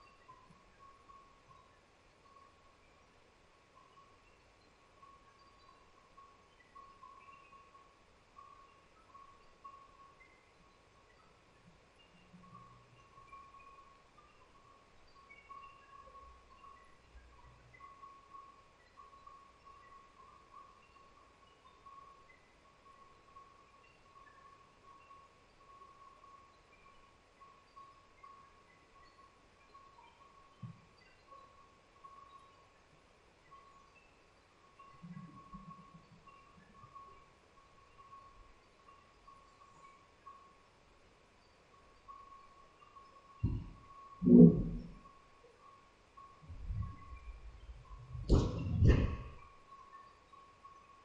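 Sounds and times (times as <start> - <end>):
faint flickering whine: 0.0 - 51.0
tiny blips: 43.5 - 45.1.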